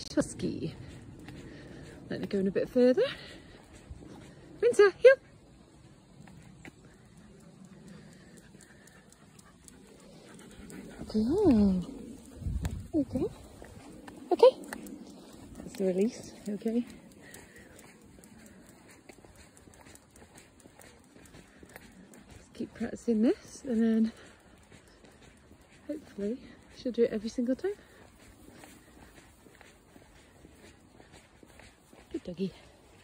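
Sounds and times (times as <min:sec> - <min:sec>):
dog footsteps on tarmac: 0:00.0 - 0:33.0.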